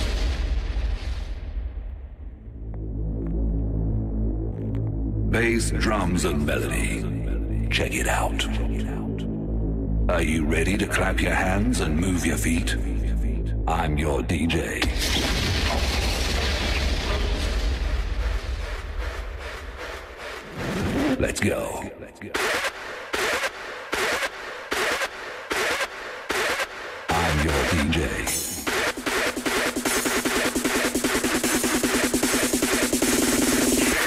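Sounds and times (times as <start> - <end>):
deep bass: 0.0 - 22.9, 26.7 - 34.0
muffled deep synth bass notes: 2.5 - 14.8.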